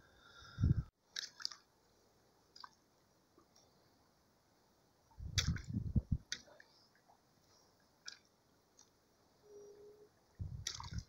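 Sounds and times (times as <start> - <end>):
water splashes and drips: 1.0 - 1.8, 2.5 - 3.6, 5.3 - 7.2, 8.0 - 9.0, 10.4 - 11.0
low rumbling bumps: 5.2 - 6.3.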